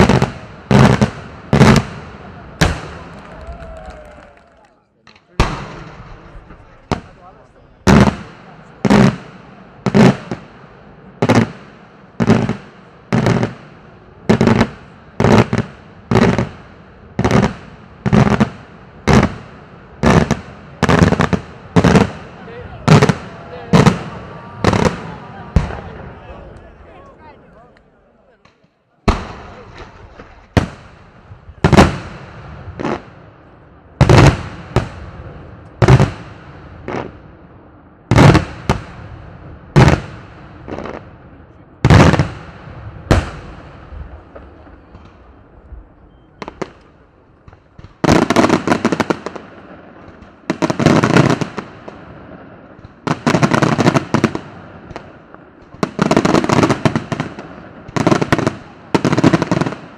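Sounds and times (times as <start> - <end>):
firework bangs with echo: 0.0 - 3.4, 5.1 - 26.2, 28.5 - 33.3, 33.9 - 37.4, 38.0 - 45.5, 46.4 - 59.9
firework crackling volleys: 0.0 - 26.8, 28.4 - 59.9.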